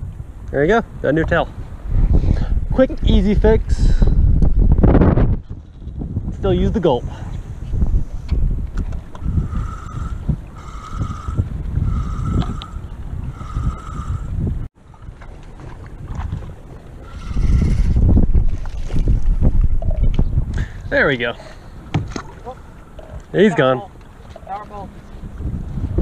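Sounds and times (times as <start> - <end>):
choppy water around boat: 0.0 - 26.0
wind buffeting microphone: 0.0 - 26.0.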